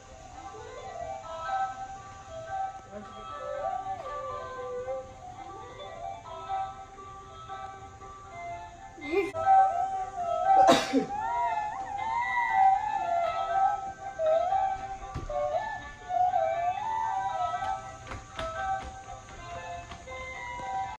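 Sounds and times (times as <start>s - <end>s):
electronic melody with gliding notes: 0.0s - 21.0s.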